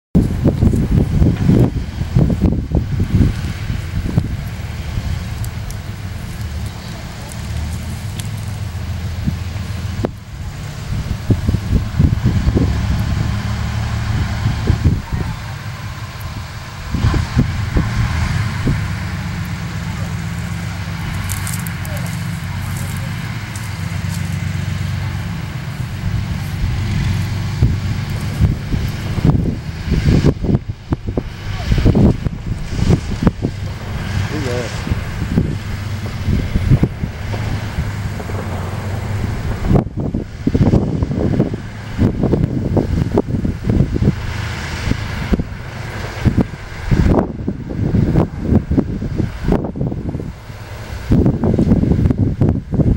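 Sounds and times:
tank diesel engine running: 0.1 - 52.9.

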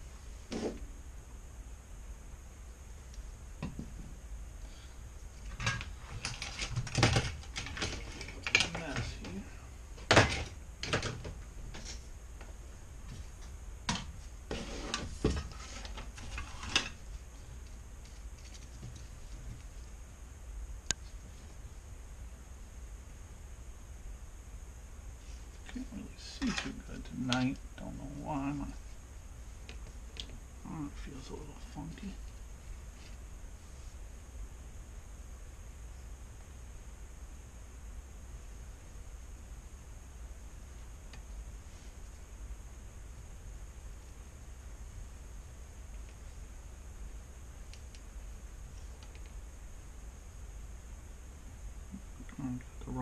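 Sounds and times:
steady hum: 0.0 - 53.0
faint high hiss: 8.0 - 53.0.

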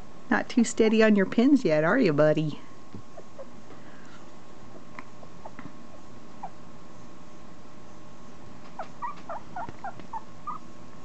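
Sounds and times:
puppy squeaking: 8.8 - 10.7.

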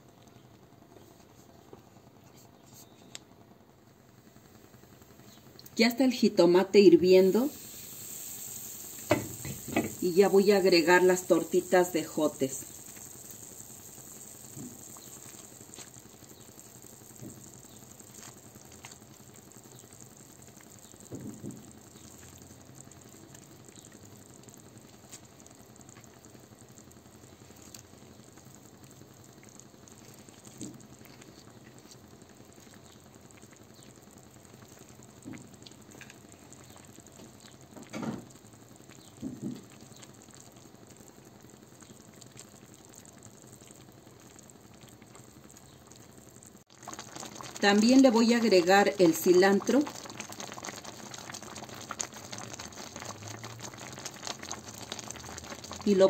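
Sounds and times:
broth bubbling in a pan: 0.0 - 56.0.

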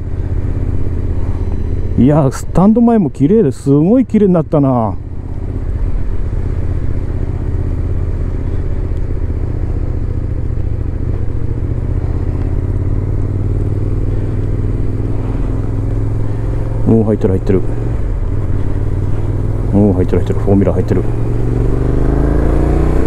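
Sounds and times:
motorcycle engine running: 0.0 - 23.0.

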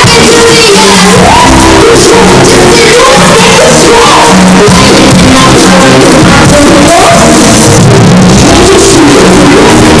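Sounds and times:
distorted live band music: 0.0 - 10.0
person singing: 0.0 - 10.0.

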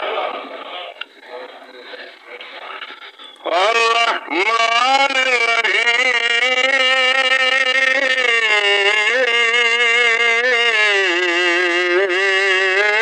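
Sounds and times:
man singing long lamenting note: 3.5 - 13.0.

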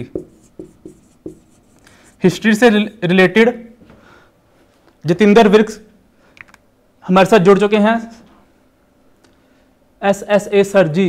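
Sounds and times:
marker writing on whiteboard: 0.0 - 2.4.

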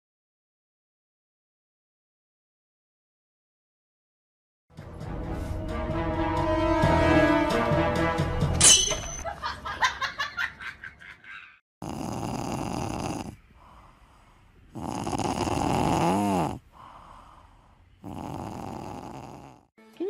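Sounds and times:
whistling snore: 11.8 - 13.4, 14.7 - 16.6, 18.0 - 19.7
cat snoring: 11.8 - 19.7.

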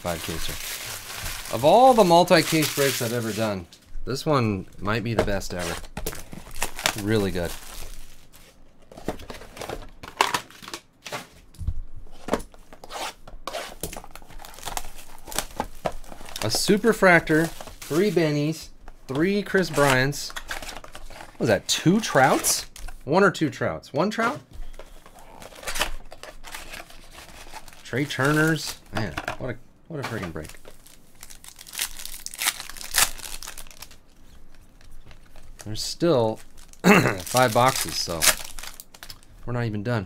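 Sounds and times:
person speaking: 0.0 - 0.8, 1.4 - 5.9, 6.9 - 7.6, 16.4 - 20.4, 21.4 - 24.5, 27.8 - 30.6, 35.6 - 38.4
plastic wrapper tearing and crinkling: 0.0 - 3.5, 5.6 - 8.5, 13.8 - 18.2, 30.4 - 39.3.

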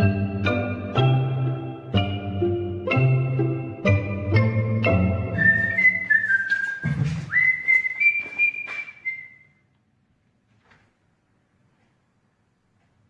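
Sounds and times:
chords over bass line: 0.0 - 5.7
whistled melody: 0.0 - 9.6.

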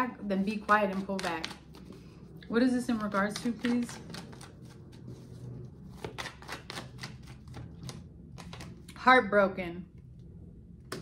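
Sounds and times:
cards being shuffled: 0.4 - 2.2, 2.8 - 8.9.

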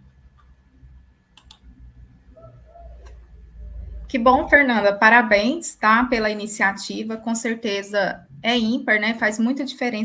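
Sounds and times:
faint low hum: 0.0 - 10.0
sharp clicks: 1.4 - 1.7.

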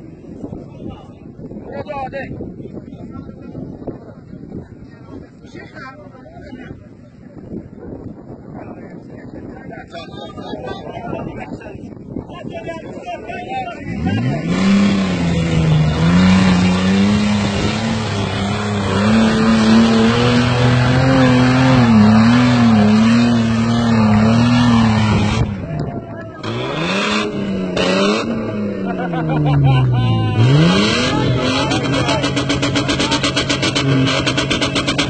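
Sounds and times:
engine revving hard: 13.9 - 25.7, 26.4 - 35.0.

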